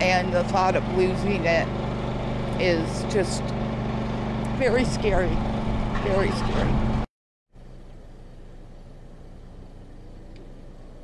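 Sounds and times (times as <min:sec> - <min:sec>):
engine idling low hum: 0:00.0 - 0:11.0.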